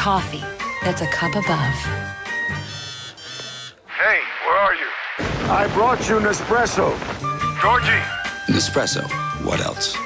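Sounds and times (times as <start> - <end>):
buzzy smartphone ringtone: 2.4 - 3.8.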